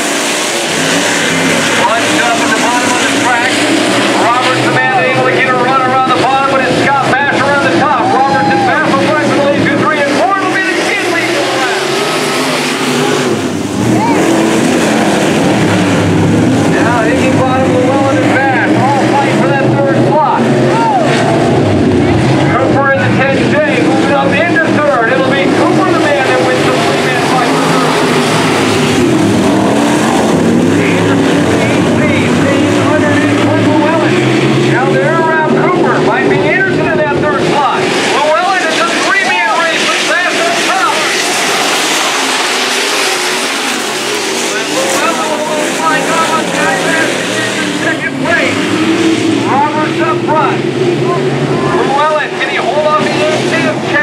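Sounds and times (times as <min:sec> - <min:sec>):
race car engines revving: 0:00.0 - 0:54.0.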